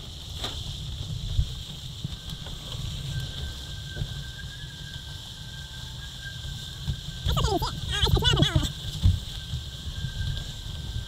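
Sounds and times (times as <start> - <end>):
wind buffeting microphone: 0.0 - 11.0
faint thin whistle: 3.0 - 6.7.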